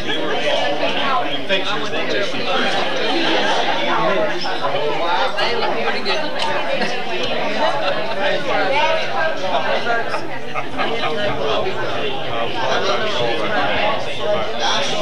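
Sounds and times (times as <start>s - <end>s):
hubbub of overlapping conversation: 0.0s - 15.0s.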